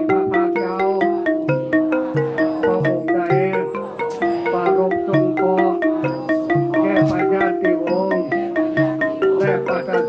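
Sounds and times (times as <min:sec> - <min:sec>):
wavering tone: 0:00.0 - 0:10.0
xylophone-like mallet notes: 0:00.0 - 0:10.0.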